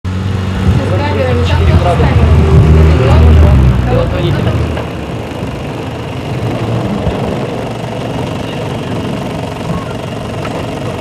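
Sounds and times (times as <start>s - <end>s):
steady low hum: 0.2s - 11.0s
people's voices: 8.1s - 10.5s.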